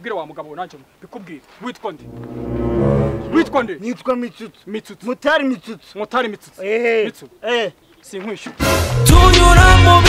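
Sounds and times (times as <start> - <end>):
deep droning horn blast: 2.0 - 3.7.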